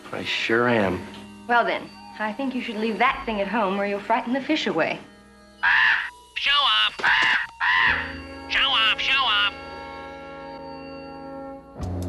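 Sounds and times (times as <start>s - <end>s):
crow cawing: 5.6s - 8.2s.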